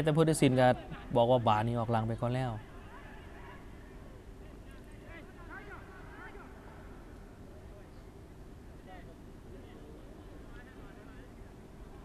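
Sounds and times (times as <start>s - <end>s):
stadium ambience: 0.0s - 12.0s
distant shouts: 2.6s - 7.0s.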